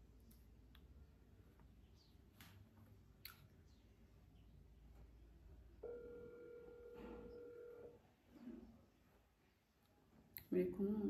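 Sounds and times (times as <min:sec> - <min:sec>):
phone ringback tone: 0:05.8 - 0:08.0.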